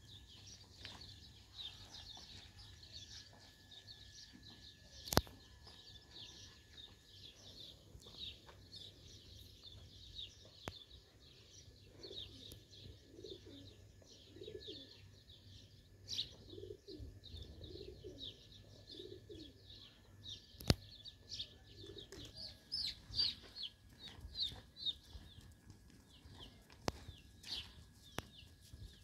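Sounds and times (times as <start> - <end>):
small birds chirping: 0.0 - 29.0.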